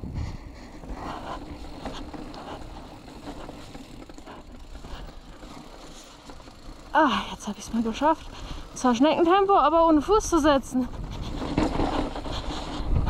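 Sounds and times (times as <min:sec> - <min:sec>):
bike rattling over bumps: 0:00.0 - 0:13.0
bike tyres on loose dirt: 0:00.0 - 0:13.0.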